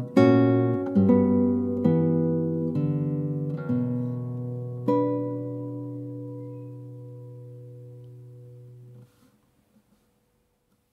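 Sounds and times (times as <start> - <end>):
classical guitar chord ringing: 0.0 - 9.1.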